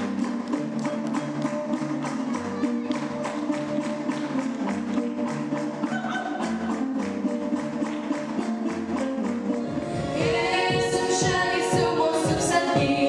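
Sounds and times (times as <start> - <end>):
fast folk-dance music: 0.0 - 13.0.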